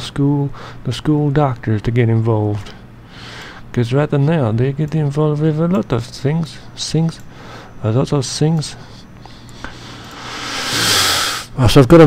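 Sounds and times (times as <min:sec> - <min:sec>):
man breathing into microphone: 0:09.3 - 0:11.5.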